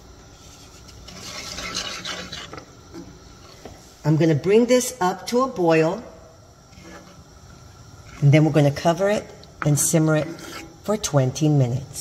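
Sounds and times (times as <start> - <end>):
scraping in a skillet: 0.3 - 4.0, 6.7 - 7.4, 9.8 - 11.1.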